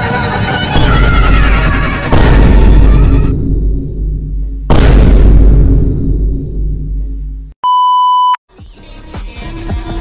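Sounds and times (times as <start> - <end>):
electronic censor bleep: 7.6 - 8.4
music with a beat: 8.5 - 10.0.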